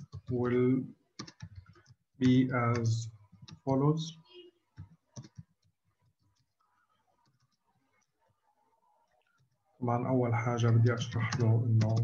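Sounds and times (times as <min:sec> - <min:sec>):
keyboard keys clicking: 0:01.2 - 0:03.6, 0:04.8 - 0:05.7.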